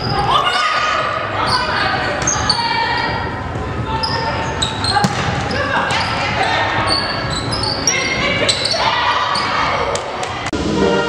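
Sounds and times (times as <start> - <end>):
sneakers squeaking on hardwood: 4.0 - 9.8
volleyball hits: 5.0 - 5.5
orchestral music: 10.6 - 11.0.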